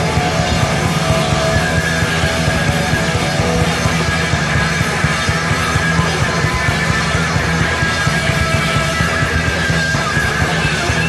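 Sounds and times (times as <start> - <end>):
bass and drums: 0.0 - 11.0
distorted electric guitar: 0.0 - 11.0.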